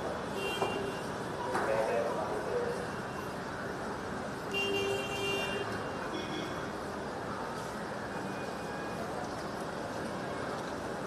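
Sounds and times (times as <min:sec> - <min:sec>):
street and crowd noise: 0:00.0 - 0:11.0.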